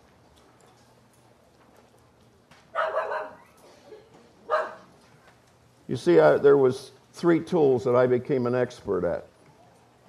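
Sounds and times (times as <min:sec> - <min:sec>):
dog barking: 0:02.8 - 0:03.6, 0:04.5 - 0:04.9.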